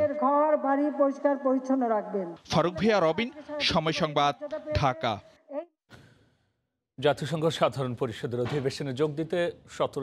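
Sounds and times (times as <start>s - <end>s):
man speaking: 2.4s - 5.2s, 7.0s - 10.0s.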